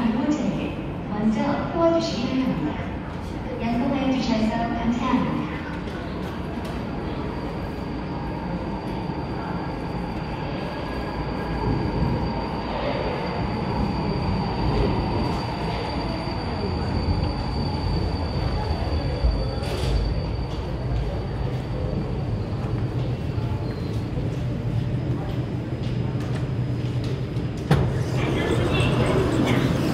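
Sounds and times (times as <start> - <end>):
train rumbling on track: 0.0 - 29.9.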